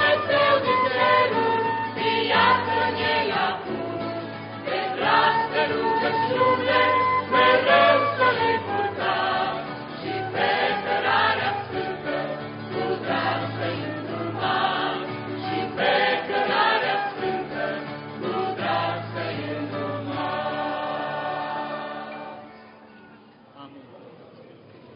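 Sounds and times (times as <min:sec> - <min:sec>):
mixed choir singing a hymn: 0:00.0 - 0:22.6
acoustic guitar: 0:00.0 - 0:24.9.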